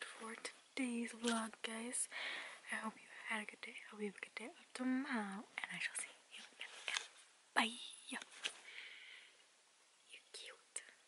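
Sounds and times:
faint whispering: 0:00.1 - 0:08.2, 0:10.0 - 0:11.0.

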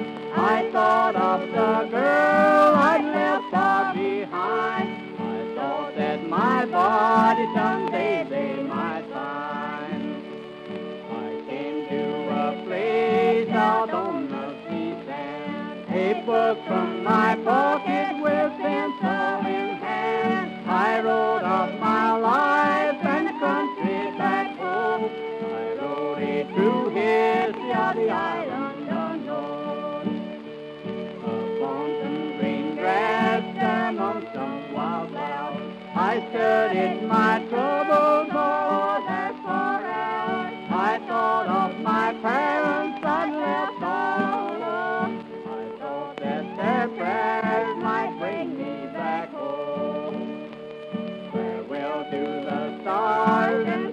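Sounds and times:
fiddle melody: 0:00.0 - 0:53.9
guitar accompaniment: 0:00.0 - 0:53.9.

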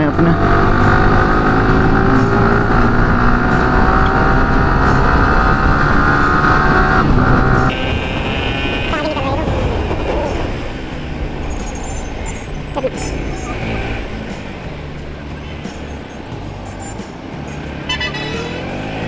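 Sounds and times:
road and wind noise: 0:00.0 - 0:19.0.

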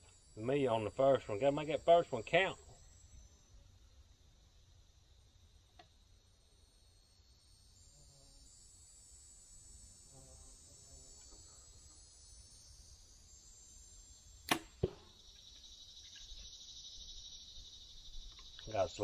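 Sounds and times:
insects whirring: 0:00.0 - 0:19.0
arrow striking target: 0:14.4 - 0:15.2
bow string snapping: 0:14.5 - 0:15.1.

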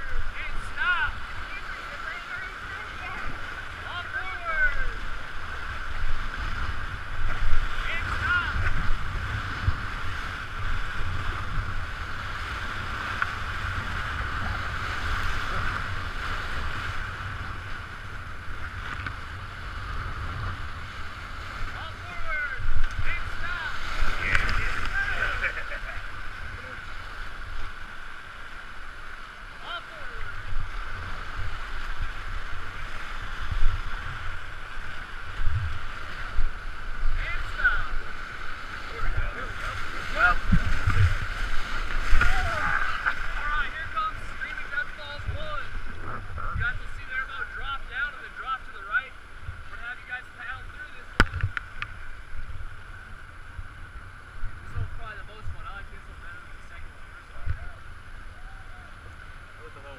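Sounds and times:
wind buffeting microphone: 0:00.0 - 0:27.1, 0:30.2 - 0:47.7
whitewater rapids rushing: 0:00.0 - 0:51.2
people yelling: 0:42.2 - 0:43.5.

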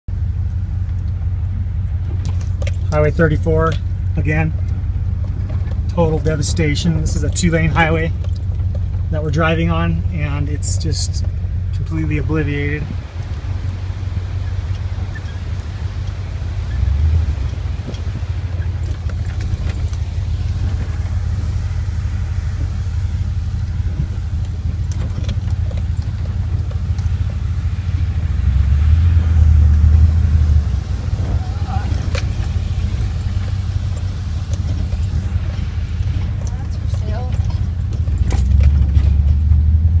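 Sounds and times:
car engine and tyres rumbling: 0:00.0 - 0:40.0
knocks and rattles from bumps: 0:01.2 - 0:40.0.

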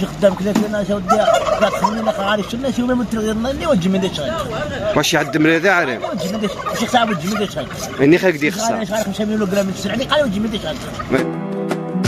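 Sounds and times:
poultry calling loudly: 0:00.0 - 0:11.2
man talking: 0:00.0 - 0:11.4.

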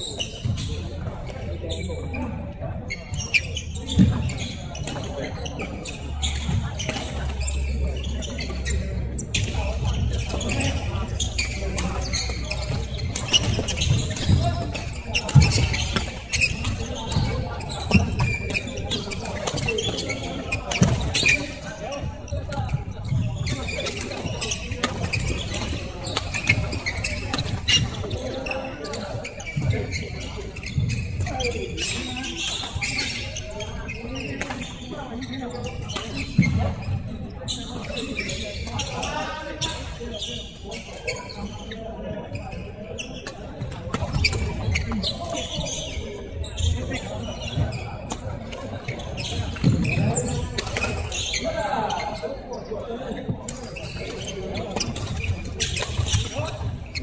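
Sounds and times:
players' voices: 0:00.0 - 0:57.0.

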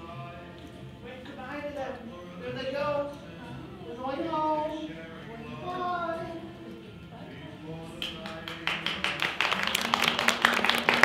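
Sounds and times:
audience clapping: 0:08.0 - 0:11.0.

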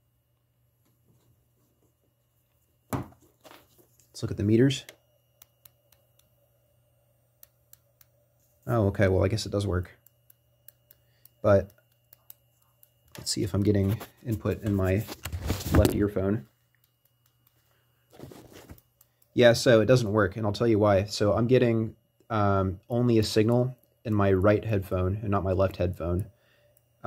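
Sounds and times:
faint low hum: 0:00.0 - 0:27.0.

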